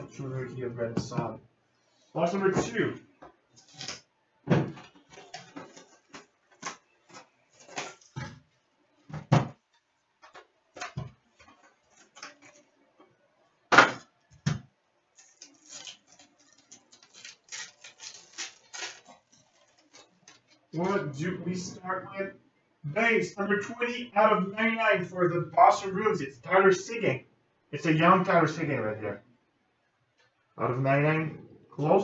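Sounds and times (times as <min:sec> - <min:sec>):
wrapper crinkling: 0:04.9 - 0:08.2, 0:15.1 - 0:20.9.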